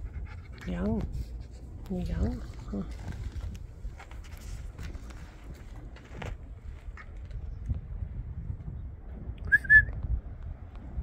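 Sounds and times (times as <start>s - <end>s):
low steady rumble: 0.0s - 11.0s
short whistled notes: 9.5s - 10.0s.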